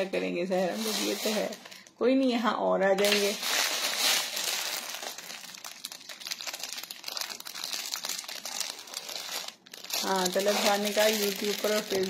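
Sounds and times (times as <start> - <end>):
plastic packaging crinkling: 0.0 - 2.1, 3.0 - 12.0.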